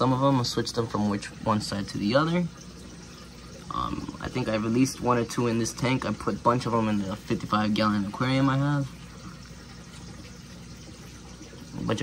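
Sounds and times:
aquarium filter water running: 0:00.0 - 0:12.0.

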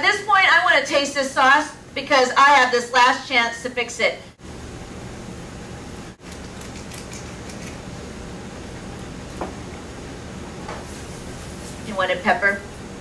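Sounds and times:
low kitchen hum: 0:00.0 - 0:13.0.

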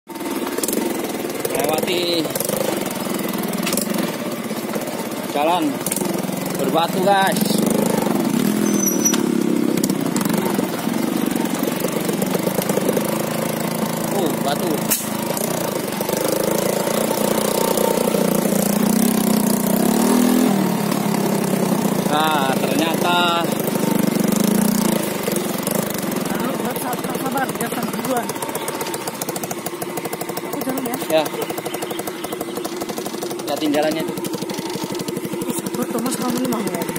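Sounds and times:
small motorcycle engine running: 0:00.1 - 0:36.9.

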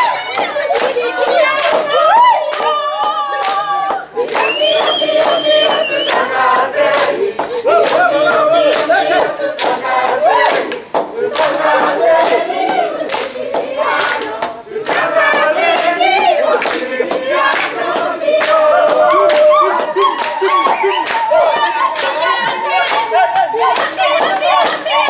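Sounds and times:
group singing and shouting: 0:00.0 - 0:25.0
hand claps: 0:00.0 - 0:25.0.

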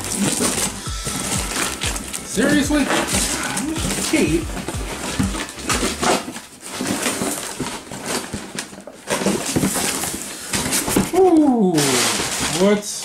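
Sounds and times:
cardboard box rustling: 0:00.0 - 0:12.8
plastic wrapping crinkling: 0:00.0 - 0:13.0.

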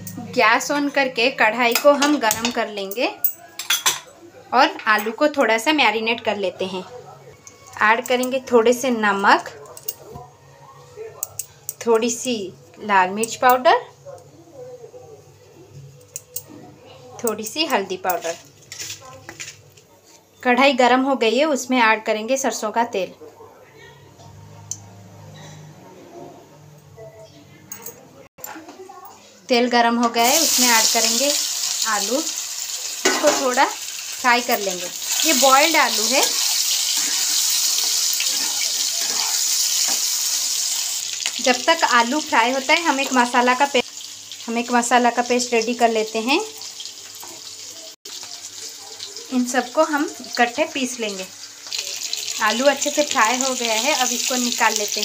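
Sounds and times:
faint background voices: 0:02.5 - 0:12.8, 0:13.4 - 0:20.5, 0:22.6 - 0:29.5, 0:38.2 - 0:40.0
potatoes sizzling in oil: 0:30.0 - 0:55.0
spatula stirring potatoes: 0:33.8 - 0:42.2.

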